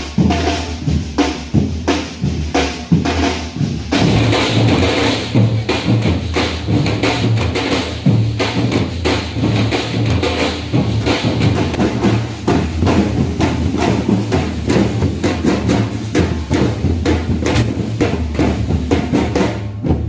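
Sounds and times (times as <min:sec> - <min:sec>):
bass drums: 0:00.0 - 0:20.0
snare drums: 0:00.0 - 0:20.0.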